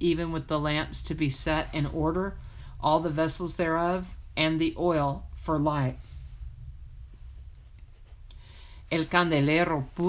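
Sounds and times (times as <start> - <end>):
person speaking: 0.0 - 6.0, 8.9 - 10.0
low room hum: 0.0 - 10.0.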